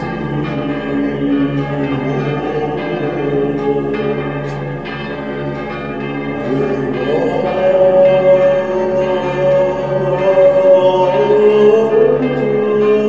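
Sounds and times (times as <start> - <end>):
chant with low held drone: 0.0 - 13.0
church bells ringing: 0.0 - 13.0.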